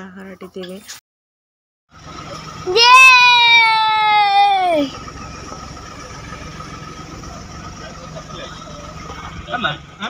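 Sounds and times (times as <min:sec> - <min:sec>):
vehicle engines rumbling: 0:01.9 - 0:10.0.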